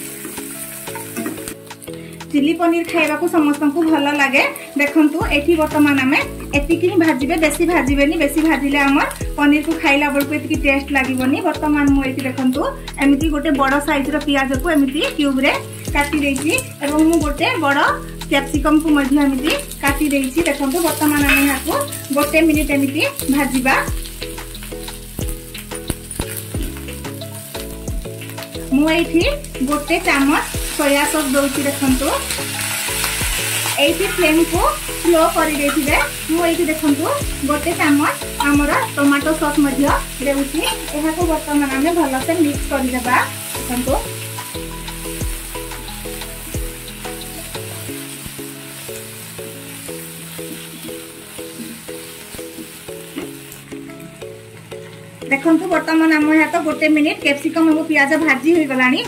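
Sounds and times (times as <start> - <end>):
background music with beat: 0.0 - 2.4, 5.2 - 55.3
vegetables sizzling in hot oil: 0.0 - 59.0.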